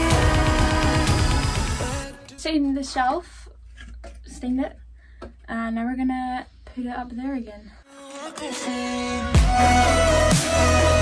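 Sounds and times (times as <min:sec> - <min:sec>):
woman singing in pop song: 0:00.0 - 0:02.4, 0:07.8 - 0:11.0.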